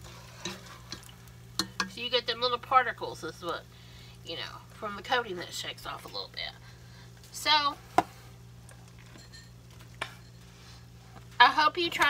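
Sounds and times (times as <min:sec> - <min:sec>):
low steady hum: 0:00.0 - 0:12.0
oil bubbling deep-frying: 0:00.0 - 0:12.0
utensil tapping pot: 0:00.4 - 0:02.0.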